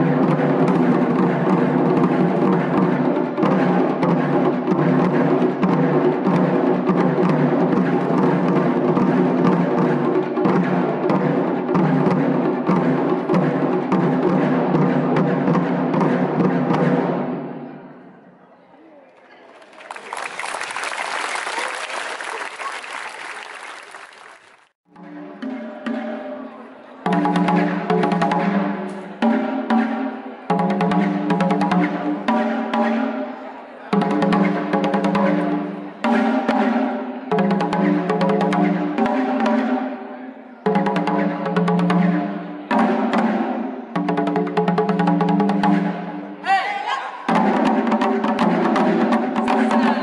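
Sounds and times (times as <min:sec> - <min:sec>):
taiko drumming: 0:00.0 - 0:17.5, 0:24.9 - 0:46.5, 0:47.3 - 0:50.0
audience applauding: 0:19.2 - 0:24.7.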